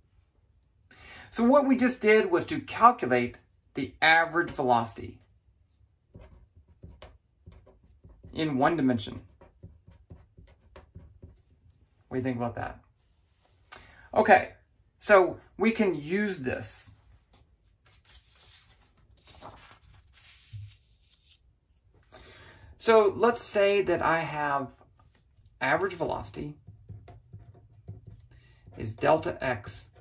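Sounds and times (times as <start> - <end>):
marker pen scratching on paper: 5.2 - 11.9, 24.8 - 30.0
paper rustling and tapping: 17.2 - 21.4, 26.5 - 29.3.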